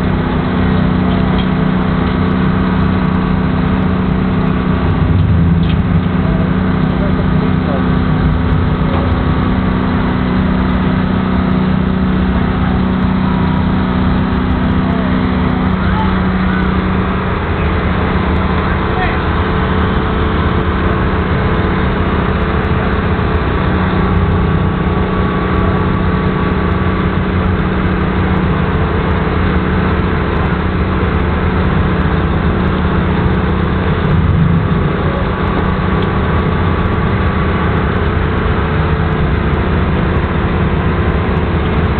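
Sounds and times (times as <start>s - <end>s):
vehicle engine idling: 0.0s - 41.9s.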